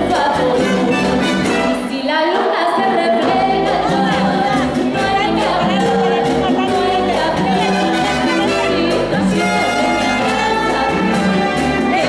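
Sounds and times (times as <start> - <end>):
live dance band: 0.0 - 12.0
voices singing: 0.0 - 12.0.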